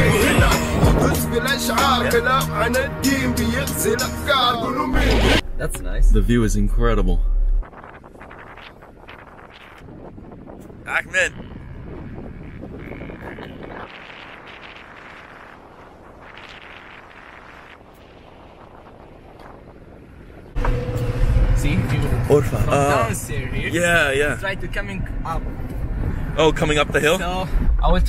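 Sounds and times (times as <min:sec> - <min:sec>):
wind: 0:00.0 - 0:28.0
people talking: 0:01.8 - 0:02.9, 0:04.3 - 0:07.3, 0:10.9 - 0:11.3, 0:21.5 - 0:25.5, 0:26.4 - 0:28.0
vehicle engine running: 0:20.5 - 0:27.8.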